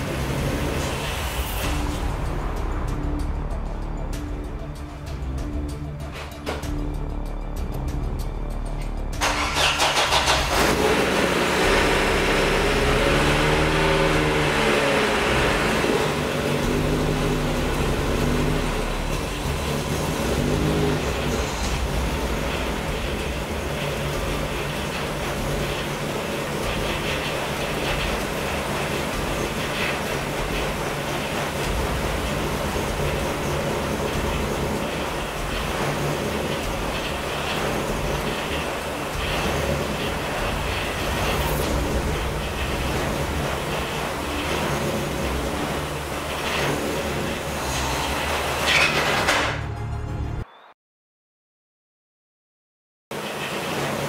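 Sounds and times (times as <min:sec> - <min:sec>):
car engine starting and idling: 0:00.0 - 0:50.3
odd engine noise: 0:00.0 - 0:50.7, 0:53.1 - 0:54.0.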